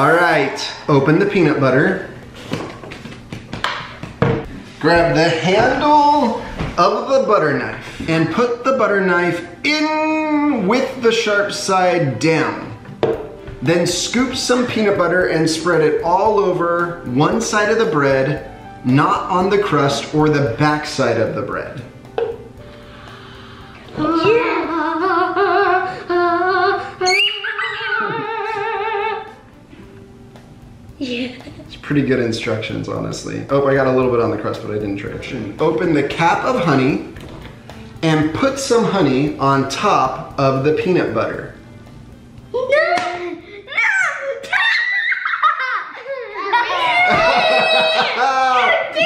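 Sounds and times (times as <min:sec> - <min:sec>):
person singing long wavering notes: 0:23.9 - 0:29.5.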